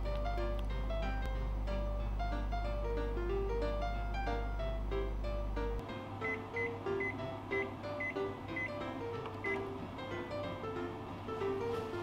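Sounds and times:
light background music: 0:00.0 - 0:12.0
short high oven beeps: 0:06.2 - 0:08.8, 0:09.4 - 0:09.7.

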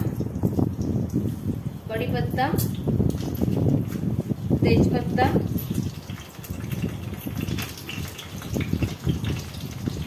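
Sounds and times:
hot oil sizzling: 0:00.0 - 0:10.0.

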